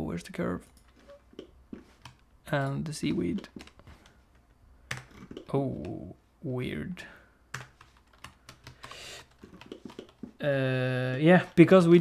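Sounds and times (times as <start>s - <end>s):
computer keyboard keys clicking: 7.5s - 10.2s.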